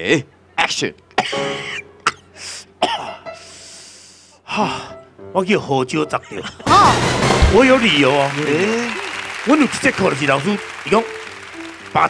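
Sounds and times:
man coughing: 0:02.8 - 0:03.3
long hissing breath: 0:03.4 - 0:04.4.

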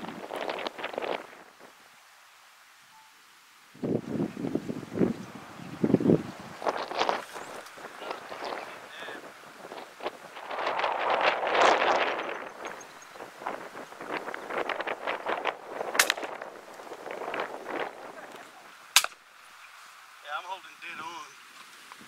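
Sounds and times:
footsteps through dry grass: 0:06.4 - 0:08.9, 0:09.5 - 0:20.2.

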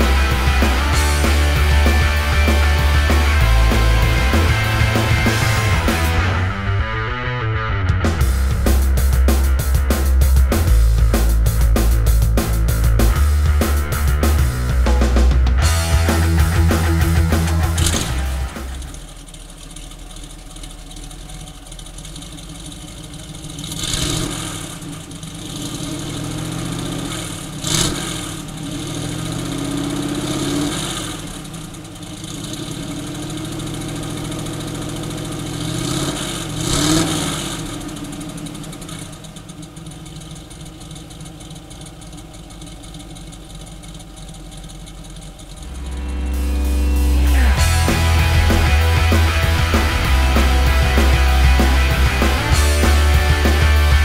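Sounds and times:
car engine revving and idling: 0:00.0 - 0:54.0.

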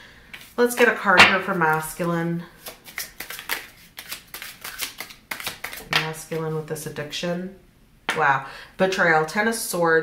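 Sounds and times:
cards being shuffled: 0:02.6 - 0:06.1.

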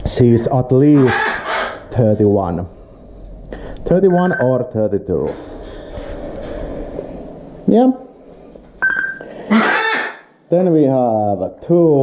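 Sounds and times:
high-pitched beep: 0:04.0 - 0:04.6, 0:08.8 - 0:09.2.

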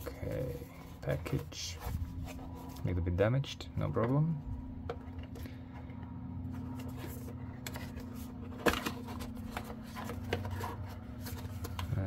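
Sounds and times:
paper rubbing and scraping: 0:00.0 - 0:03.1, 0:06.5 - 0:12.0
steady low hum: 0:00.0 - 0:12.0.

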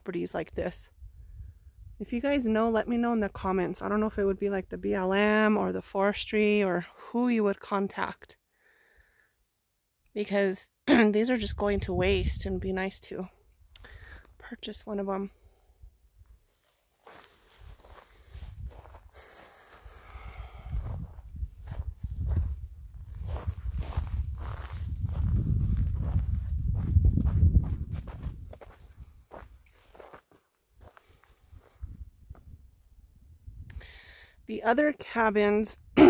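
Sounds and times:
footsteps on dry dirt and brush: 0:16.2 - 0:32.6.

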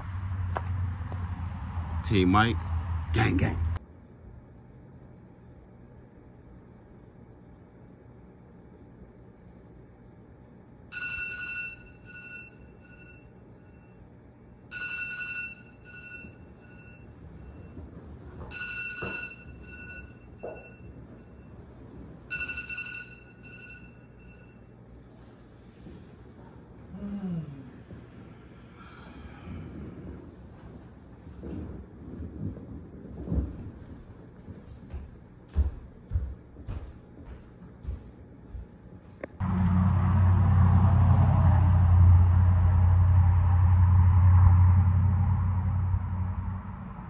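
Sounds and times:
low outdoor rumble: 0:00.0 - 0:10.6, 0:36.4 - 0:47.0
low room hum: 0:00.0 - 0:47.0.

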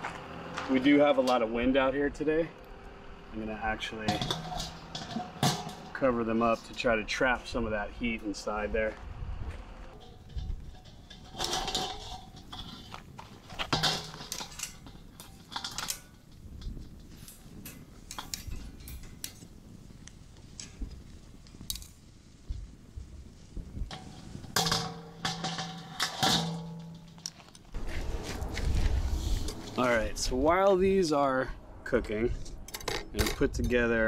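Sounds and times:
metal clanking on grill grate: 0:03.8 - 0:08.6, 0:09.9 - 0:22.2, 0:23.8 - 0:27.8, 0:32.6 - 0:34.0.

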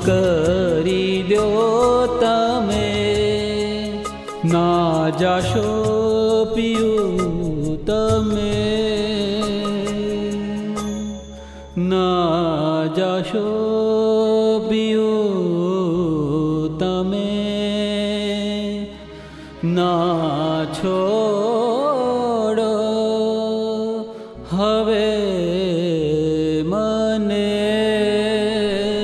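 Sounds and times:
man singing devotional song: 0:00.0 - 0:29.0
musical accompaniment: 0:00.0 - 0:29.0.

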